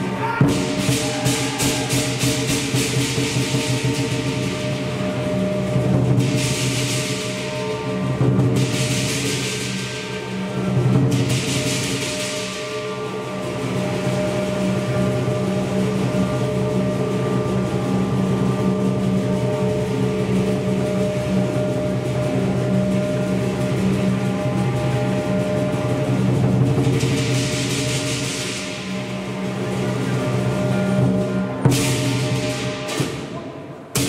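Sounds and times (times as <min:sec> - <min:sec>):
cymbals clashing: 0:00.0 - 0:34.0
drum beaten steadily: 0:00.0 - 0:34.0.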